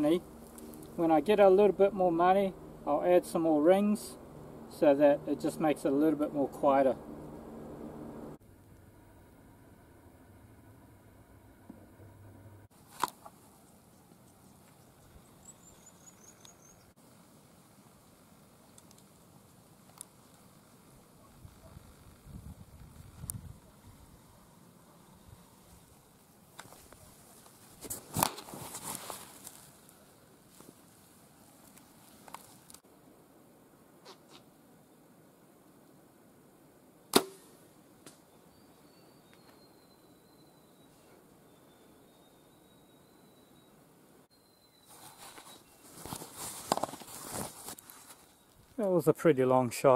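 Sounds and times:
rustling: 17.8 - 32.8, 44.8 - 48.8
bow string snapping: 37.1 - 38.2
faint high chirps: 38.2 - 46.0.

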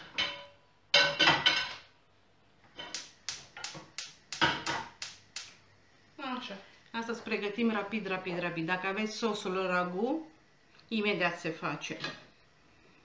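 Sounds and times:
gas hob igniter clicking: 2.8 - 5.6.

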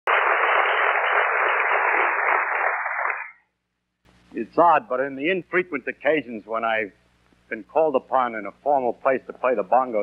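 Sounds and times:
audience applause: 0.1 - 3.3.

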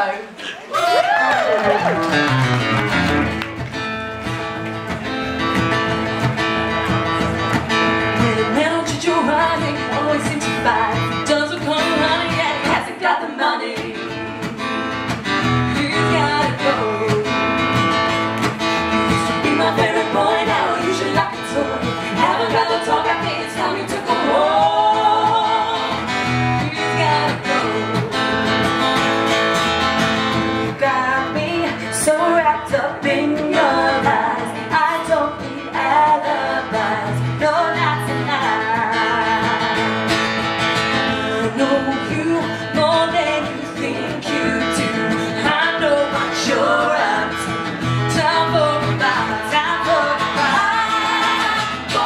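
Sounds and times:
electric guitar: 0.7 - 52.0
live pop-rock band: 1.1 - 52.0
woman singing: 8.0 - 14.6, 15.4 - 17.9, 18.5 - 28.4, 30.6 - 40.2, 41.0 - 52.0.

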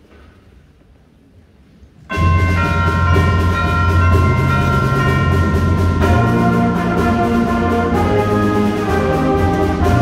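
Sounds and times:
concert band playing chords: 2.1 - 10.0.

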